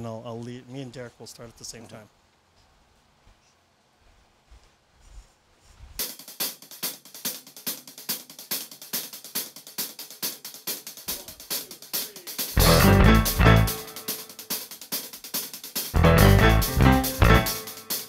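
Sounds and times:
hi-hat pattern: 6.0 - 18.0
rock band playing: 12.4 - 14.5, 15.9 - 18.0.

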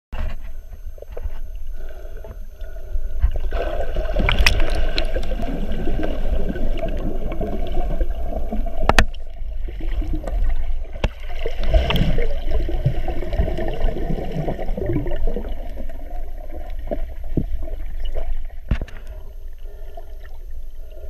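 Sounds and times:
underwater water rumble: 0.2 - 21.0
water gurgling: 0.7 - 21.0.

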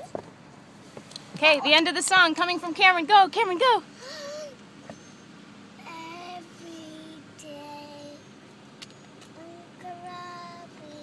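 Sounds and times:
girl singing unaccompanied: 5.8 - 8.3, 9.3 - 11.0.

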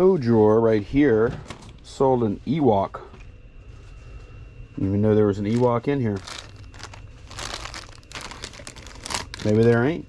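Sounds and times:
plastic bags crinkling: 5.4 - 10.0.

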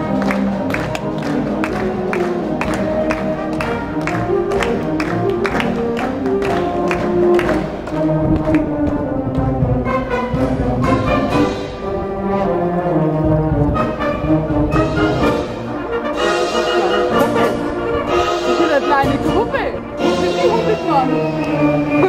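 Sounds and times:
wind band playing held chords: 0.0 - 22.0.

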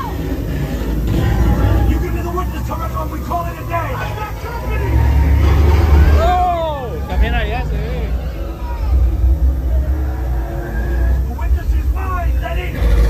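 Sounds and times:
falling wavering cries: 0.0 - 13.0
heavy low rumble: 0.0 - 13.0
voices: 0.0 - 13.0.

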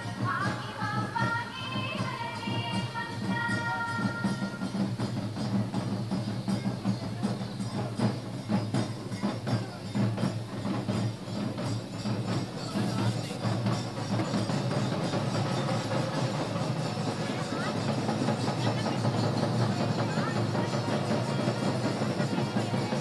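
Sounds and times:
large barrel drums beaten: 0.0 - 23.0.

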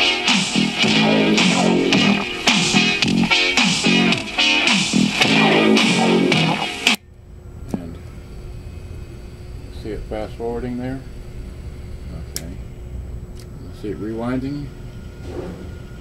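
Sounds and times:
guitar music from cassette: 0.0 - 7.0.

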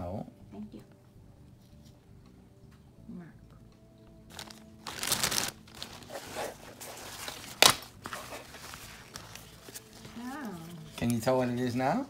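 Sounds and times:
plastic packaging crinkling: 4.3 - 11.2.

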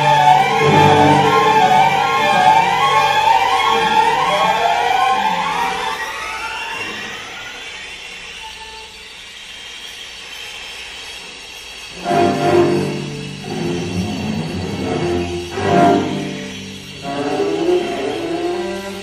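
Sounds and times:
string orchestra sliding pitches: 0.0 - 7.6, 11.9 - 19.0.

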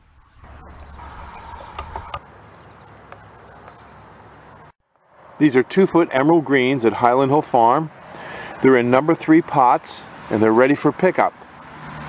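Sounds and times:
insects chirring: 0.1 - 12.0.

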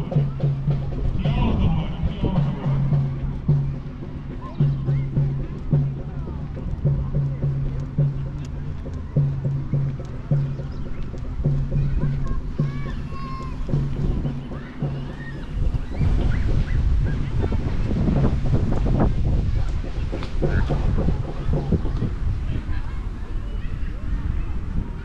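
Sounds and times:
distant bass beat: 0.0 - 25.0
faint voices: 0.0 - 25.0
wind buffeting microphone: 0.0 - 25.0.

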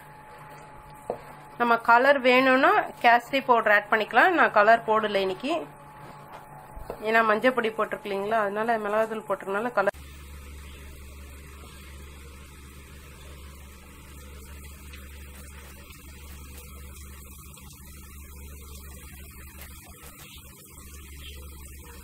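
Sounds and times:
low steady hum: 0.0 - 22.0
food deep-frying in oil: 7.5 - 22.0.

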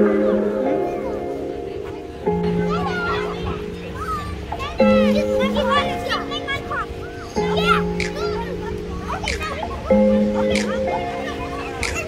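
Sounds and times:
background music of held chords: 0.0 - 12.0
children calling out and chattering: 0.0 - 12.0.

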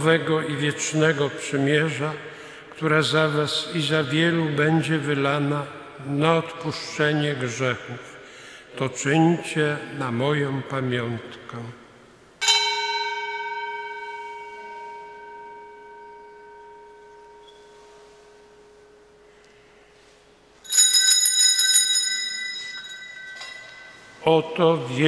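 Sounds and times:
small altar bells jingling: 12.4 - 19.0, 20.6 - 24.6
altar bell ringing: 12.4 - 24.6.

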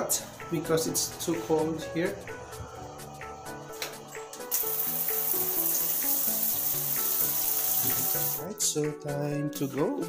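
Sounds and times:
shower spraying water: 4.5 - 8.4.

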